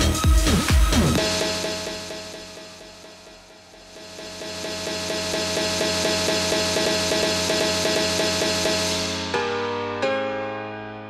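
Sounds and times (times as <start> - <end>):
electronic dance music build-up: 0.0 - 9.5.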